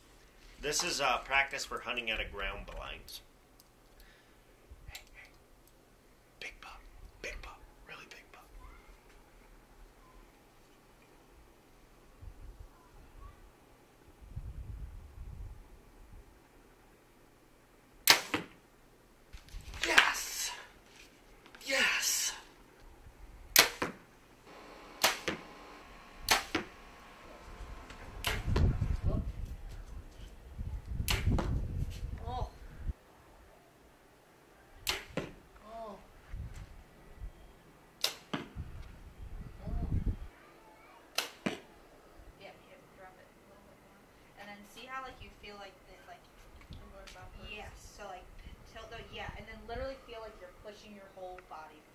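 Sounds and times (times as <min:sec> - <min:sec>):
wind rumble on microphone: 0:12.2 - 0:13.3, 0:14.2 - 0:16.3, 0:27.4 - 0:33.0, 0:36.2 - 0:37.4, 0:38.5 - 0:40.3
arrow striking target: 0:18.1 - 0:18.6, 0:23.6 - 0:24.0, 0:25.0 - 0:25.5, 0:26.2 - 0:26.8, 0:27.9 - 0:28.8, 0:31.0 - 0:31.6, 0:34.8 - 0:35.4, 0:38.0 - 0:38.5, 0:41.1 - 0:41.7
bow string snap: 0:25.0 - 0:25.5, 0:26.3 - 0:26.8, 0:27.9 - 0:28.7, 0:31.0 - 0:31.6, 0:34.8 - 0:35.3, 0:41.1 - 0:41.6.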